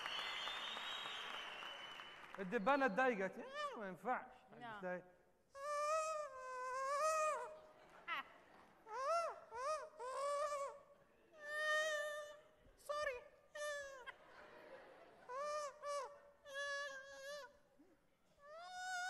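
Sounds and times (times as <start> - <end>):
man squealing in falsetto: 5.6 - 7.6, 8.9 - 10.8, 18.4 - 19.0.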